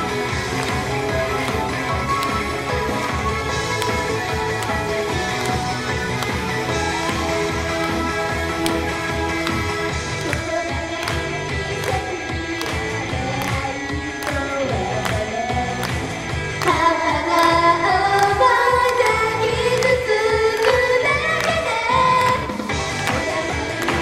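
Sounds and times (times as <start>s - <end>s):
upbeat pop backing track: 0.0s - 24.0s
female group singing: 16.7s - 22.5s.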